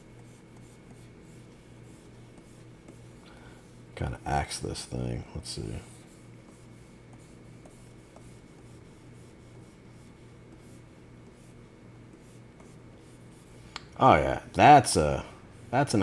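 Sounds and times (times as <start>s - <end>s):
stylus scratching on tablet: 0.0s - 13.6s
faint electrical hum: 0.0s - 16.0s.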